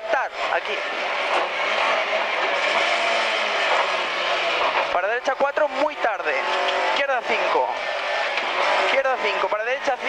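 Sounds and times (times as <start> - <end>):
car engine: 0.0 - 10.0
tyre and road noise: 0.2 - 10.0.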